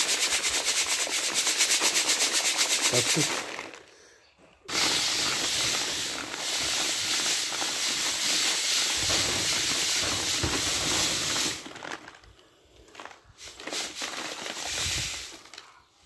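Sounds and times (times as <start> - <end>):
grain rattling in a sieve: 0.0 - 3.8, 4.7 - 12.3, 12.9 - 15.8.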